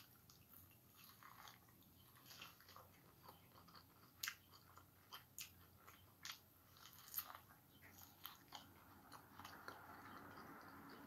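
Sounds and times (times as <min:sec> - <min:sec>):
chewing corn on the cob: 0:00.0 - 0:11.0.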